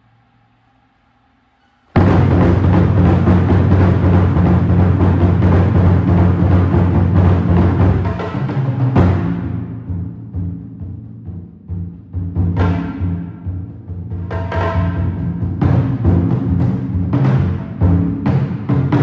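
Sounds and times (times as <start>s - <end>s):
taiko drums booming: 1.9s - 19.0s.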